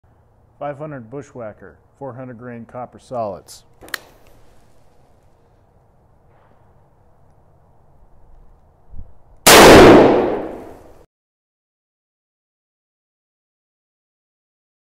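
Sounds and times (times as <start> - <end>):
revolver gunshot: 9.5 - 11.0.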